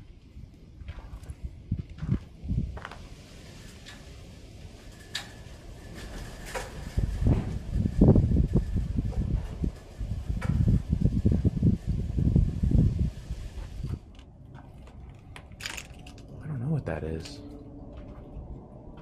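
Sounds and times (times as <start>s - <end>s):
footsteps crunching over rubble: 0.4s - 3.2s.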